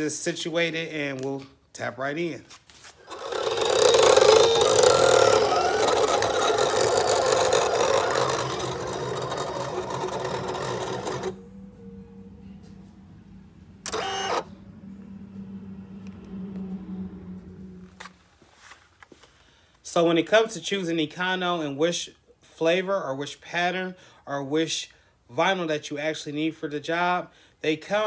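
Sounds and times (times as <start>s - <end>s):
cutting machine motors whirring: 3.0s - 18.3s
low steady hum: 3.0s - 19.6s.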